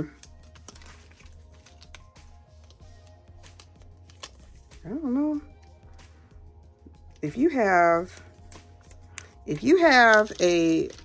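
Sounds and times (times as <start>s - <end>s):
paper crinkling: 0.0s - 4.8s, 8.1s - 11.0s
faint background music: 0.0s - 11.0s.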